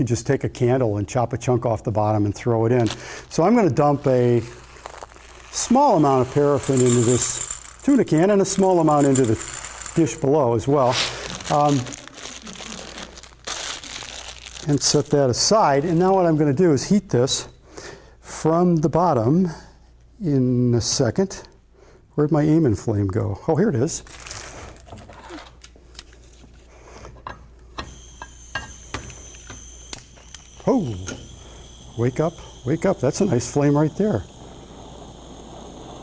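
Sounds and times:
gas torch hissing: 2.4 - 13.5, 27.8 - 36.0
plastic bag crinkling: 2.7 - 16.2, 24.0 - 25.6.

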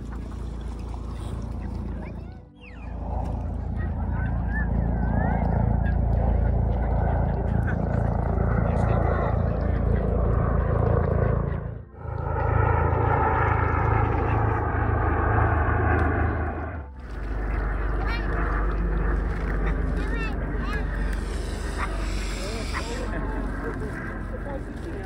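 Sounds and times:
small aircraft engine drone: 0.0 - 25.0.

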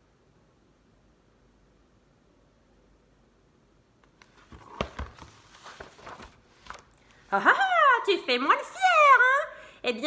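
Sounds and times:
paper rustling: 4.0 - 7.3
book handling knocks: 4.2 - 6.8.

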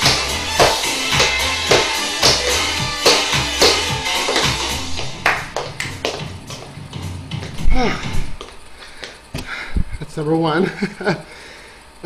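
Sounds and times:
tap shoes on hardwood floor: 0.0 - 6.8
recorded music: 0.0 - 9.3
heavy thumps: 0.0 - 9.5.

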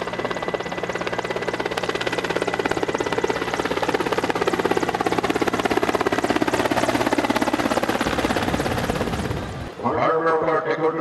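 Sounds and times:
helicopter engine hum: 0.0 - 11.0
helicopter rotor blades beating: 0.0 - 11.0.

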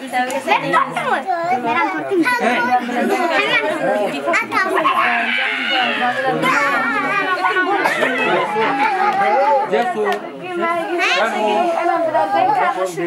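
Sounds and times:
group chatter: 0.0 - 13.0.

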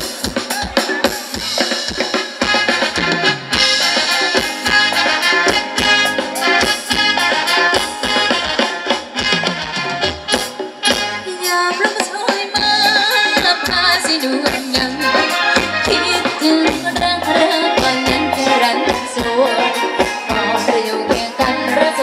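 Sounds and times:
drum kit beat: 0.0 - 22.0
live band dance music: 0.0 - 22.0.

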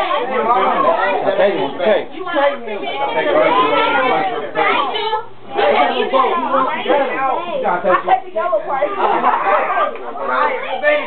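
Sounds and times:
laughter: 9.0 - 9.8.

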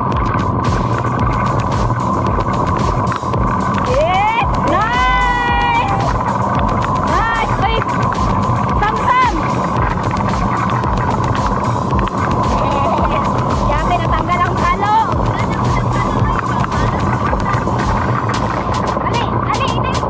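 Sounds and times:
plastic wheels rumbling on pavement: 0.0 - 20.0
wind on microphone: 0.0 - 20.0.

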